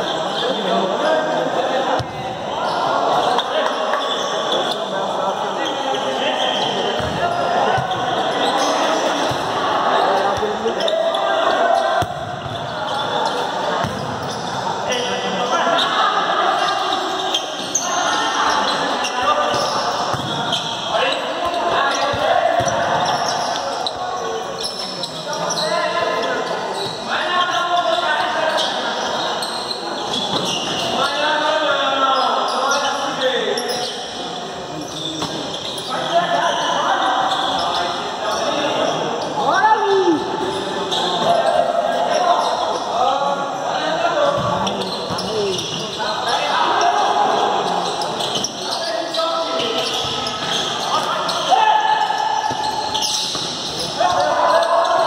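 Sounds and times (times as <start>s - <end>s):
ball kicked and bouncing: 7.0s - 7.2s.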